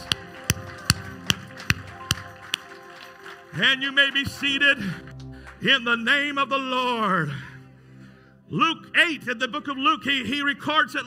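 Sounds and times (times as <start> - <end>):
hands clapping in a steady beat: 0.0 - 5.6
held music chord: 0.0 - 9.9.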